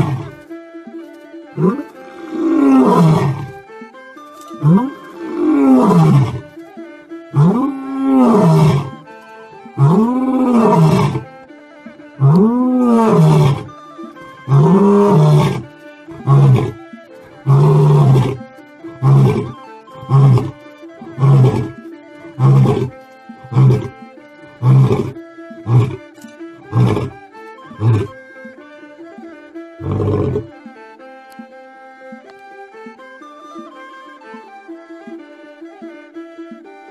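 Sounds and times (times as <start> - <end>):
steady music tones: 0.0 - 36.9
lion grunting: 1.6 - 3.6, 7.4 - 9.0, 9.8 - 11.3, 12.2 - 13.7, 14.5 - 16.8, 17.4 - 21.7, 22.3 - 23.9, 24.6 - 26.1, 26.7 - 27.2, 27.8 - 28.2, 29.8 - 30.5
lion roaring: 1.6 - 3.6, 4.6 - 6.4, 7.4 - 9.0, 9.8 - 11.3, 12.2 - 13.7, 14.5 - 16.8, 17.4 - 18.4, 19.0 - 21.7, 22.3 - 23.9, 24.6 - 26.0, 26.7 - 27.2, 27.8 - 28.1, 29.8 - 30.4.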